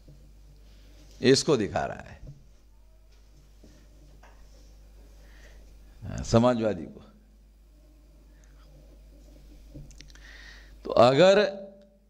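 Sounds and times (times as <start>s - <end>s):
faint room hum: 0.0s - 12.0s
man speaking into microphone: 1.2s - 2.2s, 6.0s - 7.2s, 10.9s - 11.8s.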